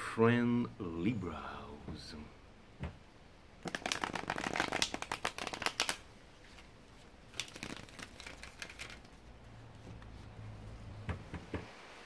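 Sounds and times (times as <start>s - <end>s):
cards riffle-shuffled: 3.6s - 6.7s, 7.3s - 9.2s.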